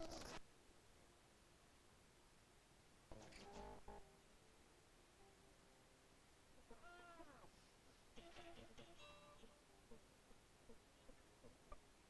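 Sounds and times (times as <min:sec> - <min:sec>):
cat meowing: 0:06.7 - 0:07.5.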